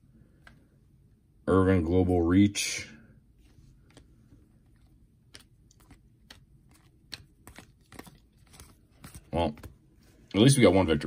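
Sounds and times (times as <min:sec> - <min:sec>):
cards being flipped through: 0:03.4 - 0:10.5.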